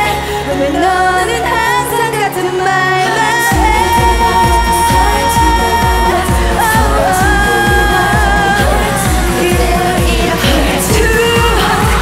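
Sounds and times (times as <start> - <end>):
women singing pop song: 0.0 - 12.0
steady bass beat: 3.5 - 12.0.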